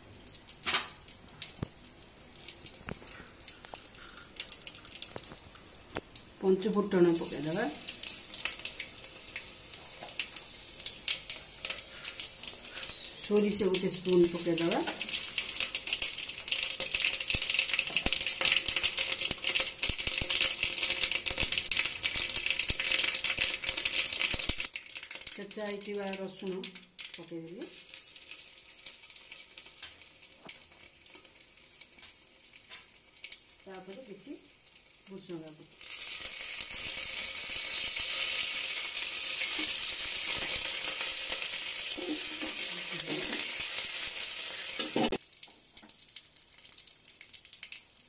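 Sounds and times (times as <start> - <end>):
seeds popping in hot oil: 0.0 - 48.0.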